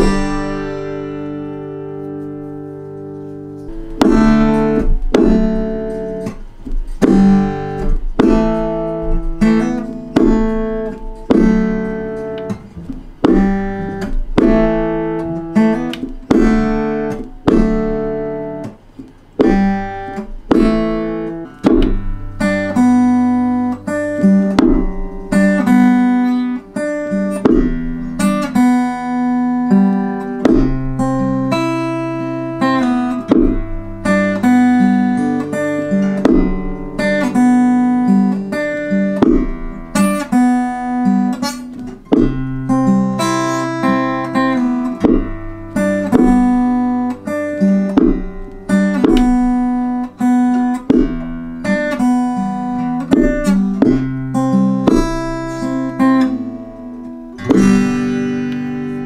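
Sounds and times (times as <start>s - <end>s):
acoustic guitar strumming chords: 0.0s - 59.0s
wooden stomp box thumping: 3.8s - 18.2s, 19.4s - 22.6s, 24.4s - 25.6s, 27.4s - 28.0s, 30.4s - 31.0s, 33.3s - 33.8s, 36.1s - 36.9s, 39.2s - 39.8s, 41.8s - 42.6s, 45.0s - 46.7s, 47.9s - 50.0s, 50.7s - 51.4s, 53.1s - 54.1s, 54.9s - 55.4s, 57.4s - 58.0s.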